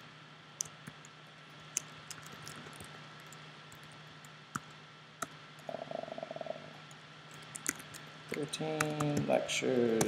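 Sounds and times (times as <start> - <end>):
low steady hum: 0.0 - 10.0
faint keyboard typing: 0.6 - 5.4, 6.9 - 10.0.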